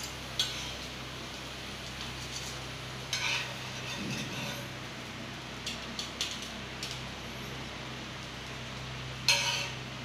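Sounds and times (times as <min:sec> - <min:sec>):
steady background hiss: 0:00.0 - 0:10.0
metal spatula scraping cutting board: 0:03.1 - 0:04.8, 0:09.3 - 0:09.8.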